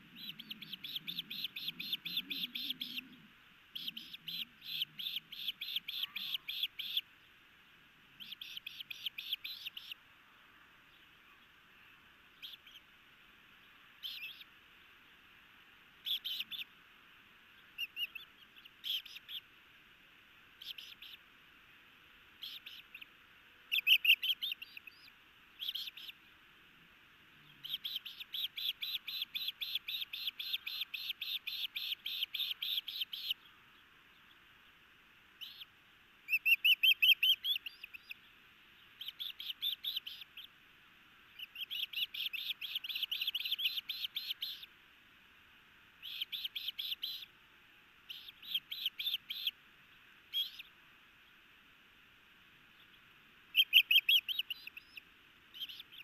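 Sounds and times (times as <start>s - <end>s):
ospreys whistled chirps: 0.1s - 7.0s, 23.7s - 26.2s, 36.3s - 38.2s, 39.0s - 40.5s, 41.4s - 44.7s, 46.0s - 47.3s, 53.5s - 56.0s.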